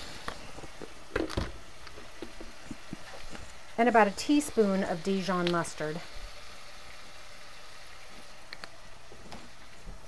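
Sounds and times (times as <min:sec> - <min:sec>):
meat sizzling in a skillet: 0:02.5 - 0:08.4.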